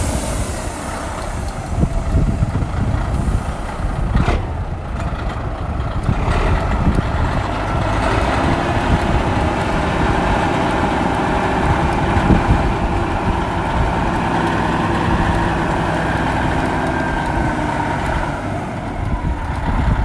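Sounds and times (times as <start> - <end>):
truck diesel engine running: 0.0 - 20.0.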